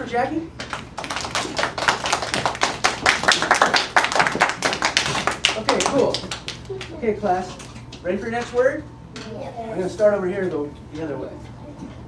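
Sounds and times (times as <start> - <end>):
children and teacher clapping: 0.7 - 6.9.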